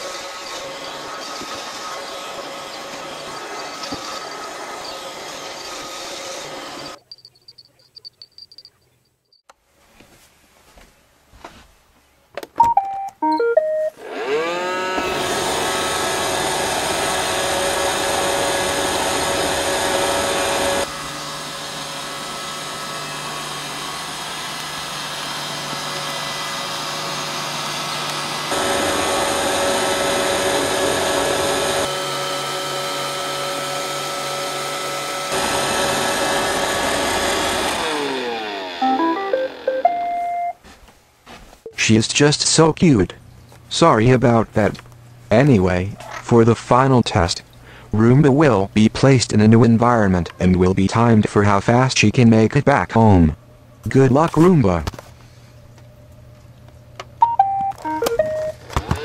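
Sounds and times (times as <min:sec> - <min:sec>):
vacuum motors whining: 0:00.0 - 0:07.2, 0:14.0 - 0:40.3, 0:55.7 - 0:59.0
robot vacuum beep tune: 0:12.6 - 0:14.0, 0:38.8 - 0:40.6, 0:57.2 - 0:58.6.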